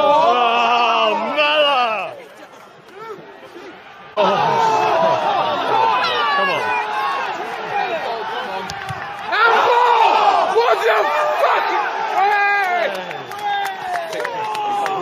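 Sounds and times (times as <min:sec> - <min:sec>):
football crowd shouting: 0:00.0 - 0:15.0.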